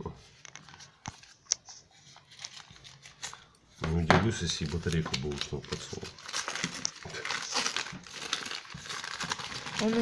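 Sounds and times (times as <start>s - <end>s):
paper crinkling and rustling: 0.3s - 10.0s.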